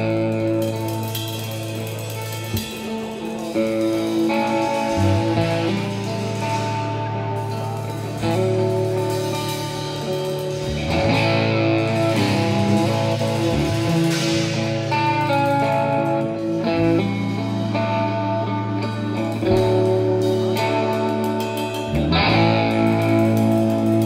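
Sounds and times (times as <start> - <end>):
bass line: 0.0 - 24.0
drums: 0.0 - 24.0
electric guitars sustained notes: 0.0 - 24.0
keyboards: 0.0 - 24.0.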